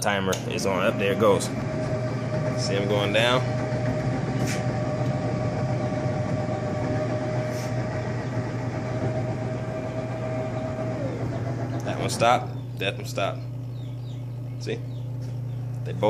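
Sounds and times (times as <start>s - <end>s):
steady low hum: 0.0s - 16.0s
drill motors whining: 0.6s - 14.5s.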